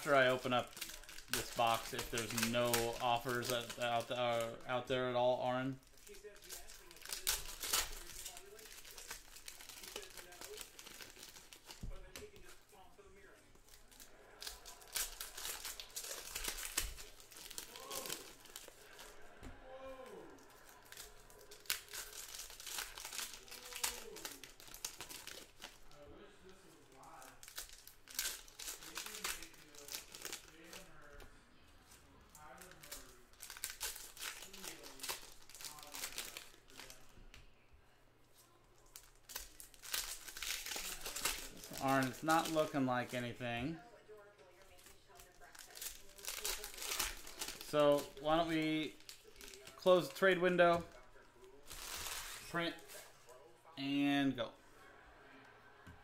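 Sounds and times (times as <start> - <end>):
plastic shrink-wrap crinkling and tearing: 0.0 - 37.4, 38.3 - 53.4.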